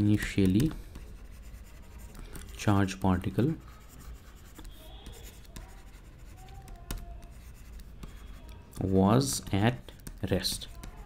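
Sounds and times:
stylus scratching on tablet: 0.0 - 11.0
pen tip tapping tablet: 0.2 - 1.3.

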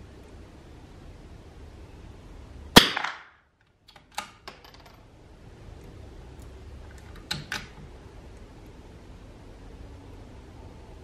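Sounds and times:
rifle shot with echo: 2.8 - 3.4.

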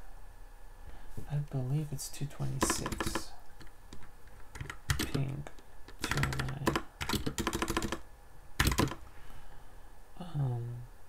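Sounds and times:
computer keyboard typing: 2.6 - 9.0.

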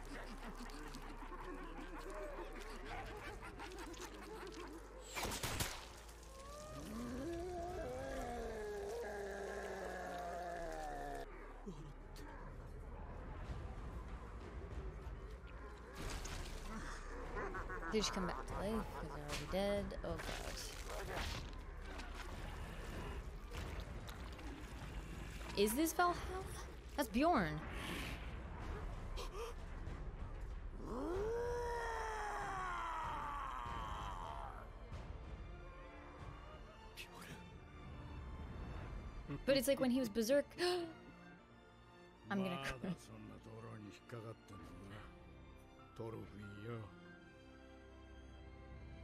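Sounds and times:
man screaming: 30.9 - 34.7.

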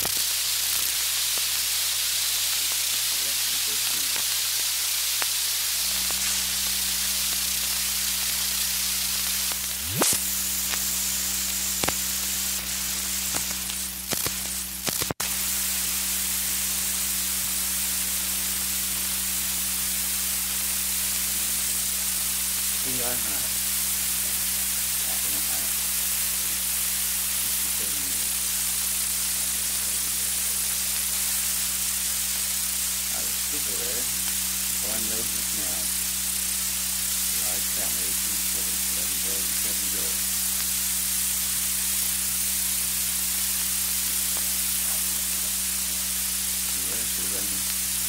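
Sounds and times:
record surface hiss: 0.0 - 48.0
low hum: 5.7 - 22.9.

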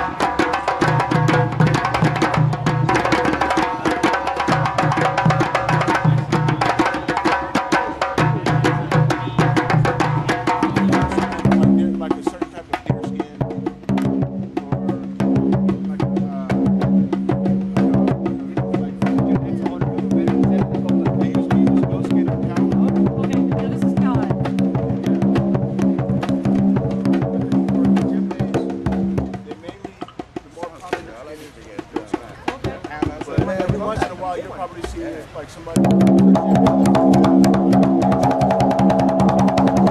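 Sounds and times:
drums in fast dense rhythm: 0.0 - 39.9
people talking: 8.2 - 16.8, 17.8 - 25.8, 26.9 - 36.9.

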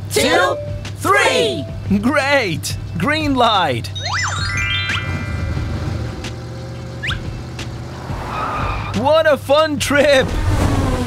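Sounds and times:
cartoon car engine running: 0.0 - 9.0
short rising whistle: 7.0 - 7.3.

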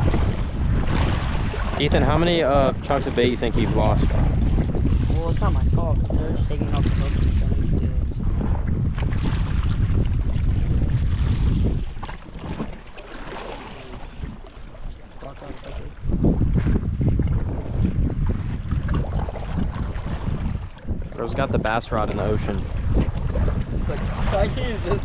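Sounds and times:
wind buffeting microphone: 0.0 - 25.0
water washing: 10.8 - 16.1.

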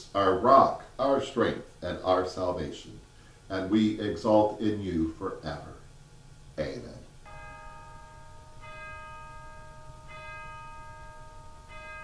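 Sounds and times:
bell ringing: 7.2 - 12.0.

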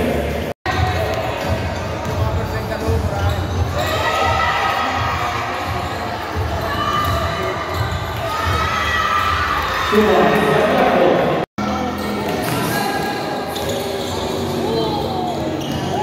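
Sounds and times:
players and spectators voices: 0.0 - 16.0
basketball bouncing on court: 0.7 - 9.6.

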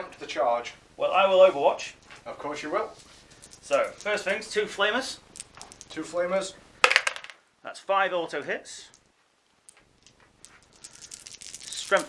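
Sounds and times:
plastic dice rattling in hand: 3.4 - 4.5, 5.3 - 6.0, 6.8 - 7.4, 9.7 - 12.0.

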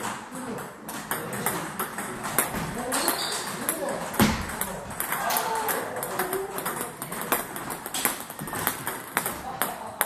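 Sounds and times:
table tennis balls clicking: 0.0 - 10.0.

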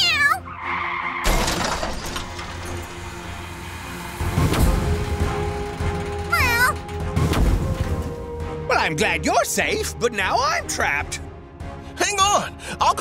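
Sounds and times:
cartoon kitten meow: 0.0 - 0.4
background music: 0.0 - 13.0.

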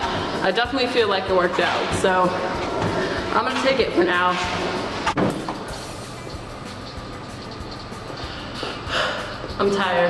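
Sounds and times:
faint music: 0.0 - 10.0
steady mechanical noise: 0.0 - 10.0.

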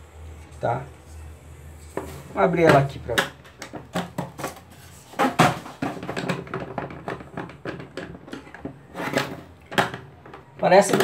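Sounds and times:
plastic case knocking and scraping: 2.0 - 11.0.

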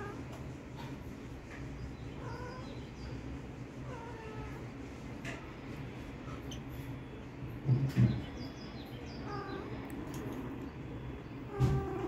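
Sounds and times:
cat meowing: 2.2 - 2.8, 3.8 - 4.7, 9.2 - 9.7, 11.5 - 12.0.

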